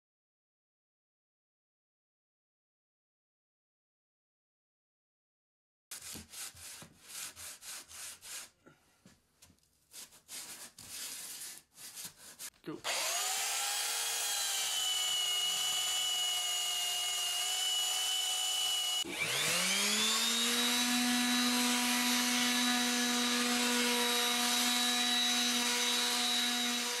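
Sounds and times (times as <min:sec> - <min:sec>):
power tool motor whining: 0:12.8 - 0:27.0.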